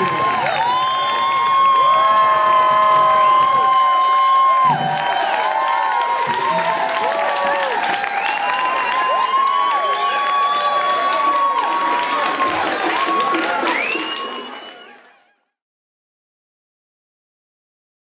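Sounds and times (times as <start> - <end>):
crowd cheering and whooping: 0.0 - 15.3
people clapping: 0.0 - 15.3.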